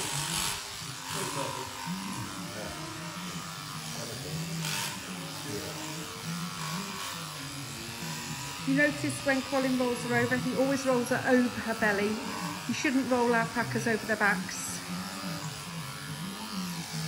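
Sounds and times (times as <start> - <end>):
electric shears humming: 0.0 - 17.0.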